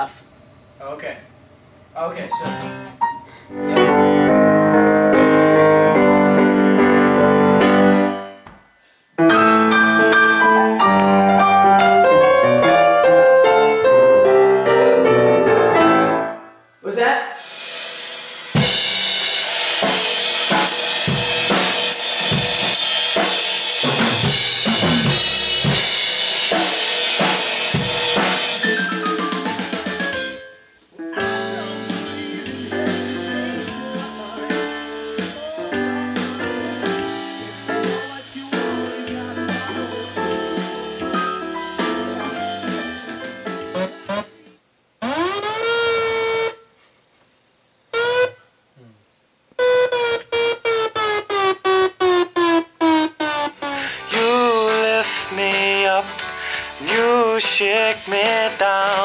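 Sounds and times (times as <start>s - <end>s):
grand piano playing: 2.3s - 8.4s, 9.2s - 16.8s, 23.9s - 44.4s
band playing with drums and cymbals: 17.4s - 30.5s, 31.2s - 44.4s.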